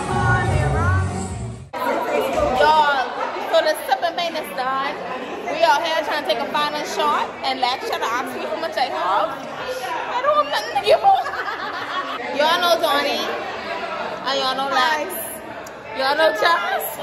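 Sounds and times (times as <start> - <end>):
women talking and chattering: 0.0 - 17.0.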